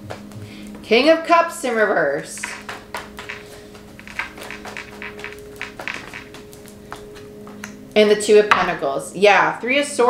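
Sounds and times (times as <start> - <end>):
cards being shuffled: 2.4 - 6.7.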